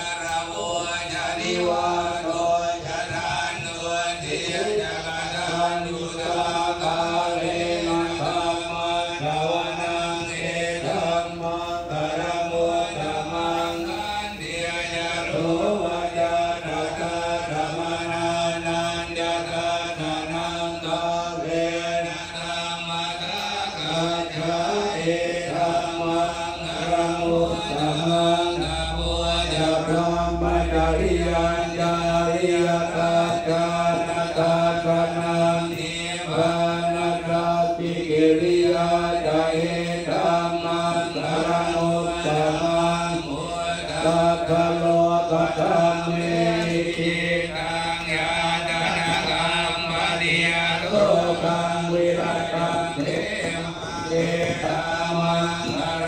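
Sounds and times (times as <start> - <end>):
monks chanting in unison: 0.0 - 56.0.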